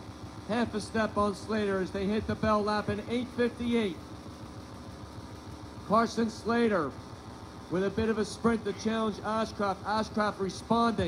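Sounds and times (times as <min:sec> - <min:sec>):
steady background noise: 0:00.0 - 0:11.0
man commentating: 0:00.5 - 0:04.0, 0:05.9 - 0:07.0, 0:07.7 - 0:11.0.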